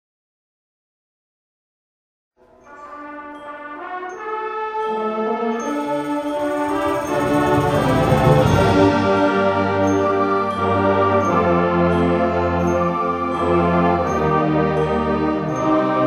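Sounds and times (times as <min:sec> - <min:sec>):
band playing wind and brass chords: 0:02.7 - 0:16.0.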